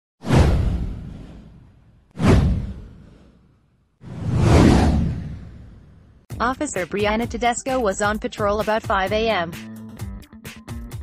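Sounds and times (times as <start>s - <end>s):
cinematic whoosh with deep boom: 0.2s - 6.3s.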